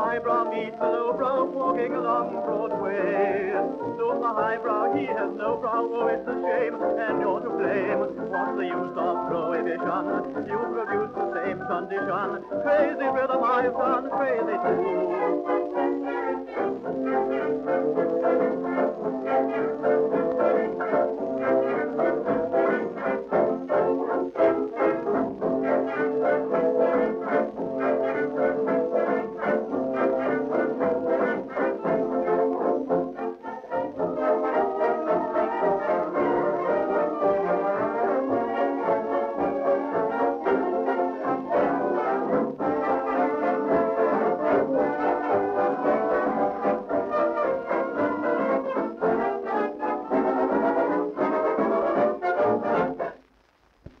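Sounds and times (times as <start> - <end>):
dance band with brass on record: 0.0 - 54.0.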